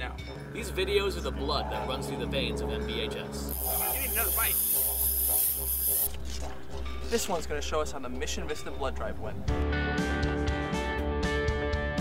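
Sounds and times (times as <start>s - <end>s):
background music: 0.0s - 3.6s, 4.2s - 12.0s.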